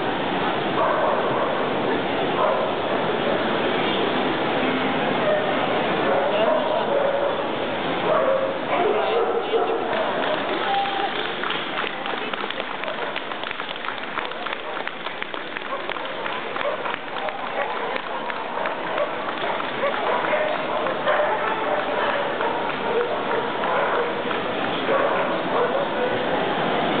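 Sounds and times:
crowd talking: 0:04.6 - 0:27.0
sharp hand claps: 0:09.9 - 0:24.8.

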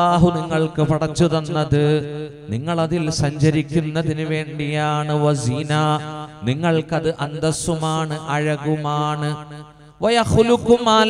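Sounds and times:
man preaching in sing-song voice: 0:00.0 - 0:11.0.

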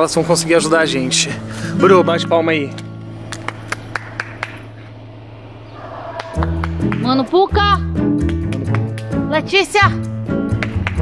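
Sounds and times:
steady low hum: 0:00.8 - 0:08.2
sharp handclaps: 0:03.3 - 0:04.7, 0:06.2 - 0:07.2, 0:08.2 - 0:09.2, 0:10.5 - 0:11.0.

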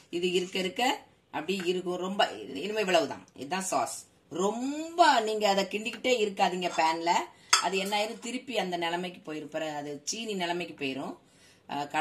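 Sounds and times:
woman talking: 0:00.0 - 0:12.0.

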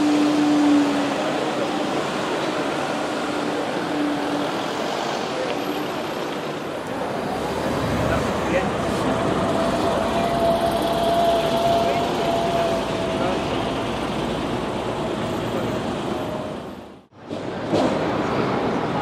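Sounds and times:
cars passing: 0:00.0 - 0:19.0.

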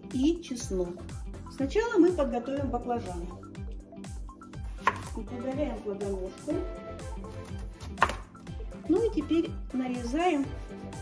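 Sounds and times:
background music with beat: 0:00.0 - 0:11.0
knife chopping on cutting board: 0:04.6 - 0:05.2, 0:07.3 - 0:08.3.

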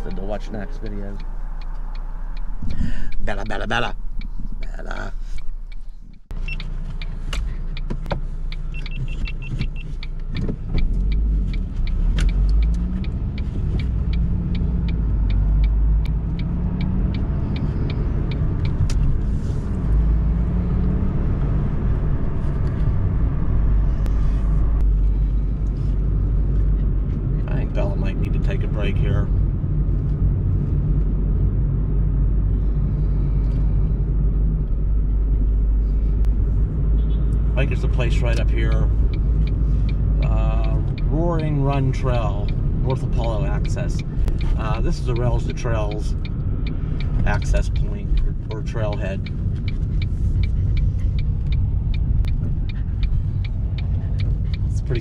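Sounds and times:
regular ticking: 0:00.0 - 0:23.4, 0:34.2 - 0:55.0
car engine accelerating: 0:00.0 - 0:55.0
road rumble: 0:00.0 - 0:55.0.

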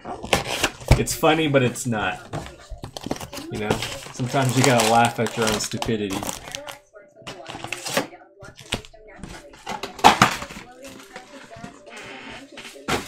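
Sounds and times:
cellophane card packs crinkling: 0:00.0 - 0:13.0.

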